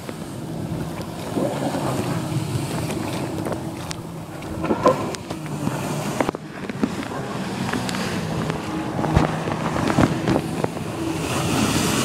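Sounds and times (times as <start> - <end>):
rushing water: 0.0 - 12.0
watercraft engine running: 0.0 - 12.0
wind buffeting microphone: 0.0 - 12.0.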